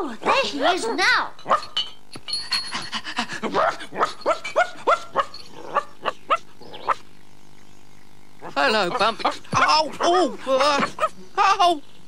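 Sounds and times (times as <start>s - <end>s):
dog barking: 3.5s - 7.0s, 8.4s - 11.2s.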